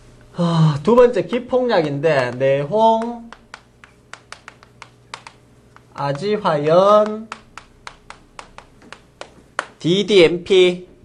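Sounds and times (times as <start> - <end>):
chalk tapping and writing on blackboard: 1.3 - 9.8.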